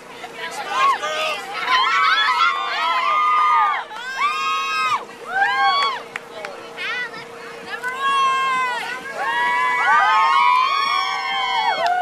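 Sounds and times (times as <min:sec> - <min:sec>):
faint steady hum: 0:00.0 - 0:12.0
girls cheering and whooping: 0:00.7 - 0:06.1, 0:07.8 - 0:12.0.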